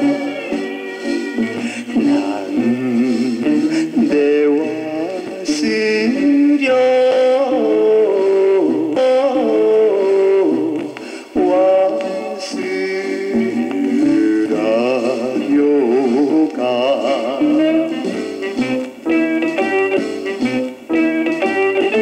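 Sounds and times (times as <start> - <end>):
man singing with vibrato: 0.0 - 20.0, 20.9 - 22.0
instrumental accompaniment: 0.0 - 22.0.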